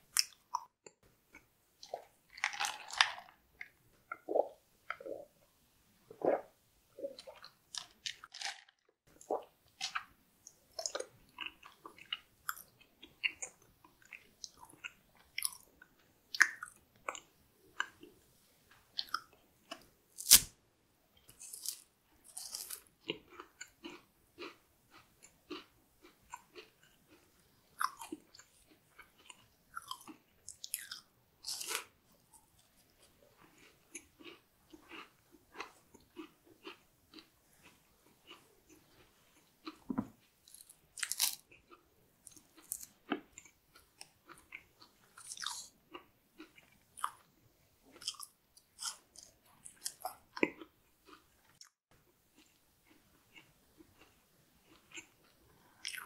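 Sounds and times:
chewing with mouth clicks: 21.2s - 31.9s, 33.0s - 56.0s.

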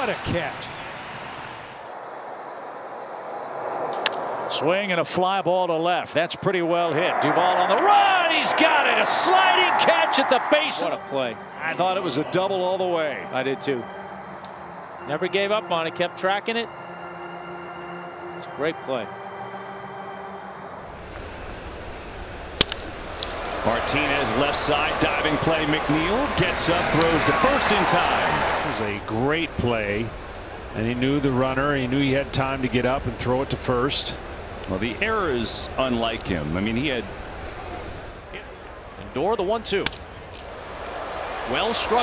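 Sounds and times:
ballpark crowd ambience: 0.0s - 1.9s, 20.8s - 42.0s
tv baseball broadcast: 0.0s - 1.9s, 4.0s - 19.1s, 21.0s - 42.0s
bat hitting baseball crack: 22.5s - 23.5s.

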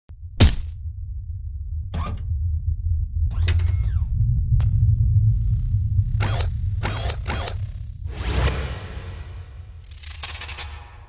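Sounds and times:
low bass rumble: 0.1s - 9.8s
crackling glitch burst: 4.6s - 11.0s
whoosh: 5.0s - 11.0s
quick mechanical whirs: 6.2s - 9.2s.

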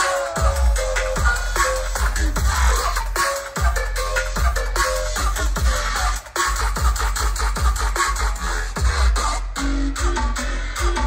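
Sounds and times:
loud electronic dance music: 0.0s - 11.0s
deep kick drums: 0.4s - 2.9s, 8.8s - 9.3s.

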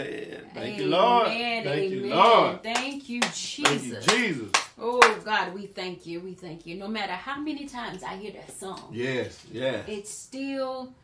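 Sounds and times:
voices calling out: 0.0s - 2.6s
sharp hand claps: 2.2s - 5.2s.

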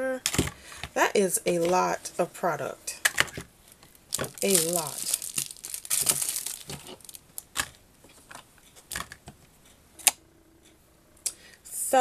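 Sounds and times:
plastic packaging crinkling: 3.7s - 7.8s.

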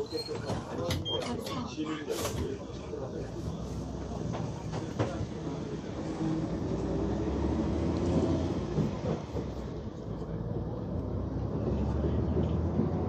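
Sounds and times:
bus engine running: 2.7s - 13.0s
road and body rumble: 2.8s - 13.0s.

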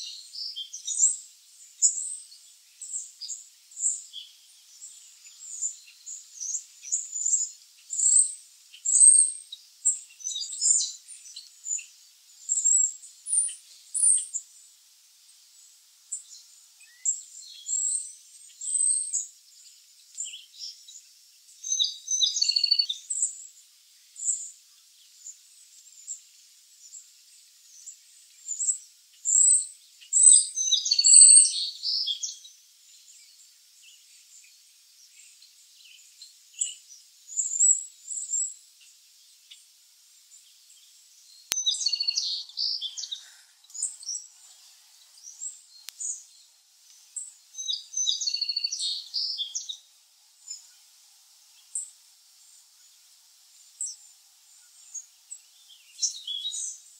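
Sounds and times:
nestlings peeping: 41.3s - 50.7s.

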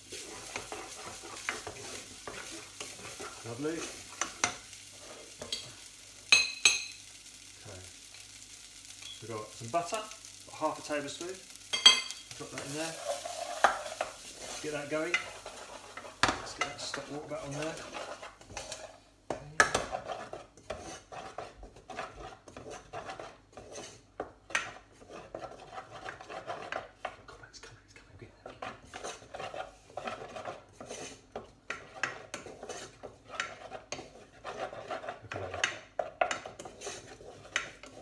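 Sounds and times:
spoon scraping rice in a pan: 0.1s - 38.0s.

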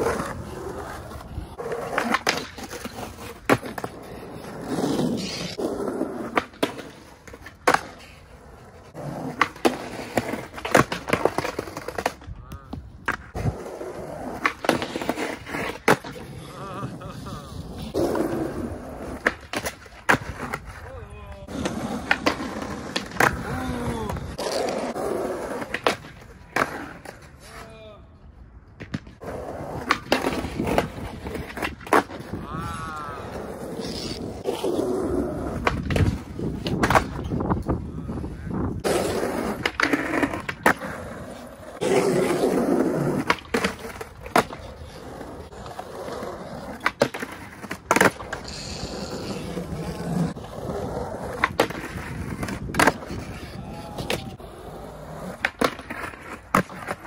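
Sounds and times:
skateboard clacking on concrete: 0.0s - 16.9s, 17.8s - 27.3s, 28.8s - 57.0s
skateboard wheels rolling on concrete: 0.0s - 57.0s.

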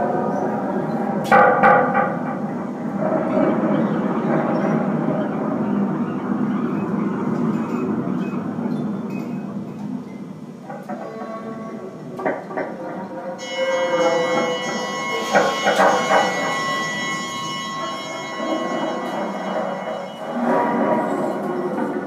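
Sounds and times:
sharp pitched hit ringing: 13.4s - 21.8s.

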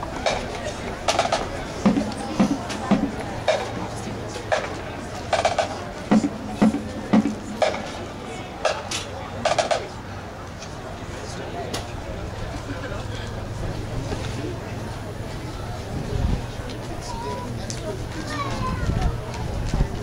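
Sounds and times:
low drum strokes: 1.2s - 9.0s.

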